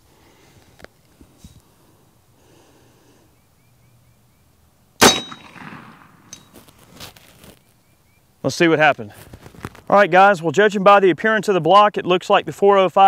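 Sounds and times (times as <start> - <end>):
metallic ring: 5.0 - 5.5, 6.2 - 6.6
air rifle shot: 5.0 - 6.4.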